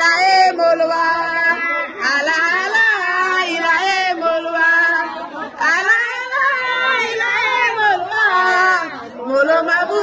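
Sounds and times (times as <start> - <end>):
women singing high notes: 0.0 - 10.0.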